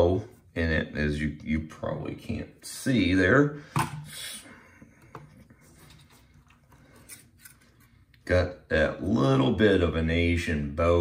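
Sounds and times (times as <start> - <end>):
handling noise rubbing and scraping: 5.0 - 8.0.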